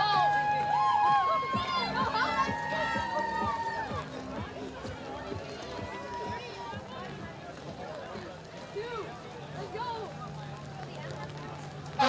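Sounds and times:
scattered voices: 0:01.1 - 0:12.0.

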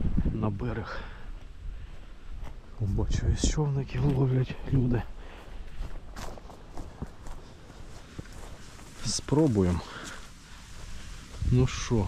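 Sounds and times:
footsteps walking: 0:01.2 - 0:12.0.

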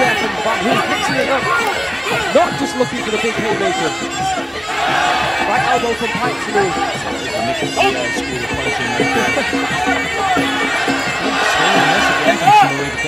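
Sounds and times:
drums: 0:00.0 - 0:13.0
reedy oboe melody: 0:00.0 - 0:13.0.

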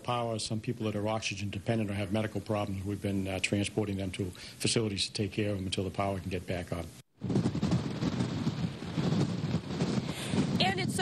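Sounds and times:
wind buffeting microphone: 0:07.2 - 0:11.0.

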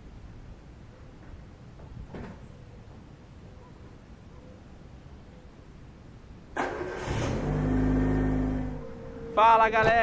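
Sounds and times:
car engine starting and running: 0:06.6 - 0:09.3.

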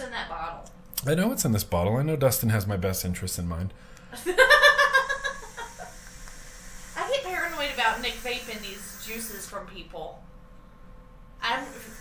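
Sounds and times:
person laughing: 0:04.2 - 0:06.0
air hissing through e-cig: 0:05.2 - 0:09.6, 0:11.4 - 0:12.0.

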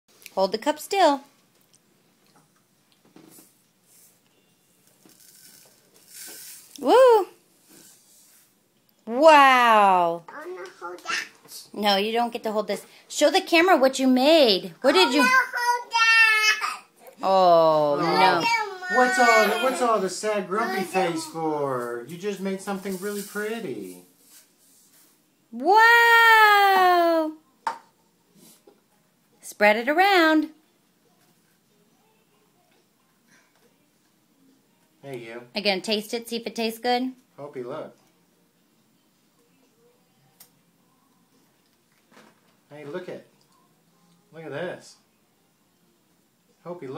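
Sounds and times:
high voice exclaiming wow: 0:06.8 - 0:07.4, 0:25.6 - 0:27.4.

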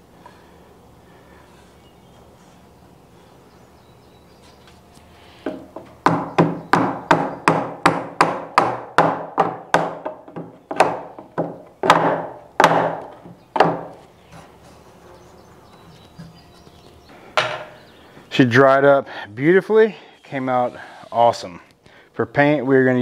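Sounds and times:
rubber mallet striking wooden wedge: 0:05.5 - 0:14.0.

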